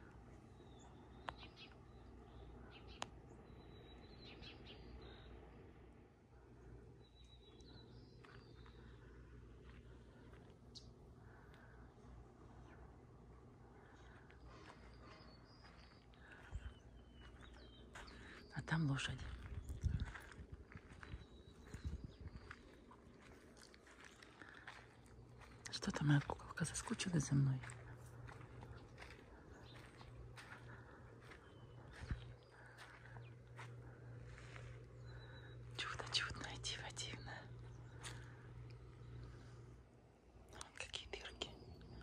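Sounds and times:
faint bird chirps: 0.0 - 5.8, 6.4 - 39.7
steady low hum: 0.0 - 42.0
footsteps on dirt road: 7.8 - 10.8, 14.0 - 39.2.

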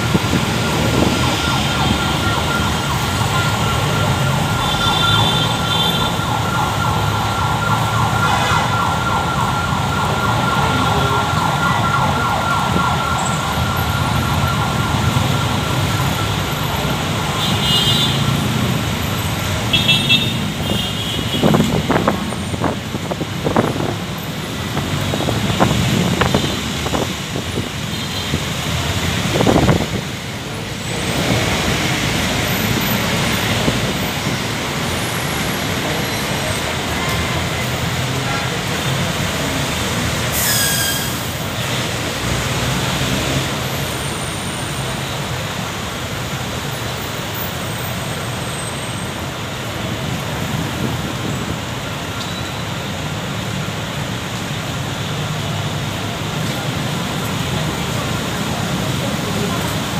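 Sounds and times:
city road traffic: 0.0 - 59.9.

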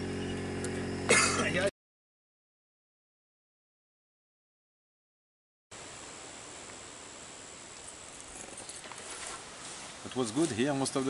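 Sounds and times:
steady hiss: 5.7 - 11.0.

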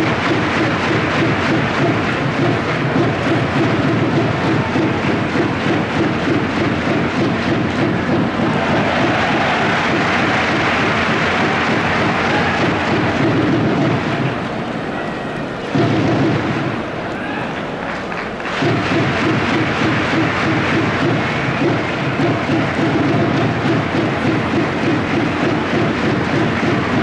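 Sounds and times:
crowd applauding and cheering: 0.0 - 27.0.

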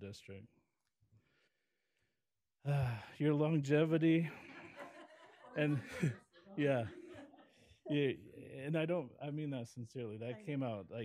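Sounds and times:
person speaking: 5.5 - 7.0
man saying uh: 7.9 - 8.9, 10.0 - 11.0.

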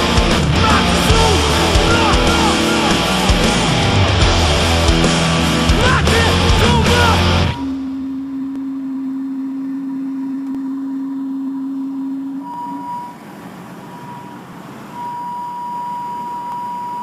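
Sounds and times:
sustained electronic tones: 0.0 - 17.0.

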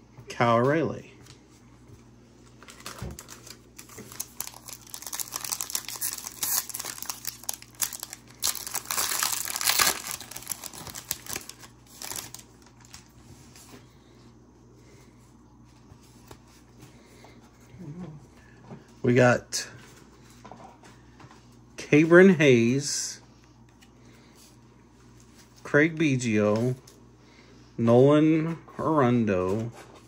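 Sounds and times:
plastic wrapper crinkling and tearing: 2.5 - 13.2.

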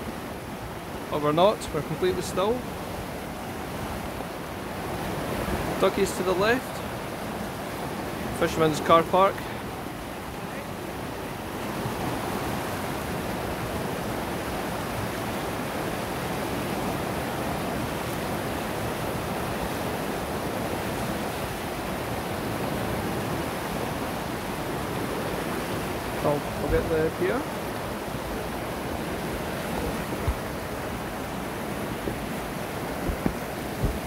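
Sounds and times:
river water rushing: 0.0 - 34.0.

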